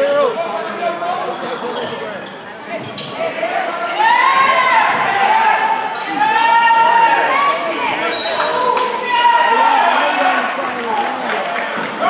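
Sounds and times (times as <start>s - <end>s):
sneakers squeaking on court: 0.6s - 3.4s
voices shouting: 3.0s - 10.5s.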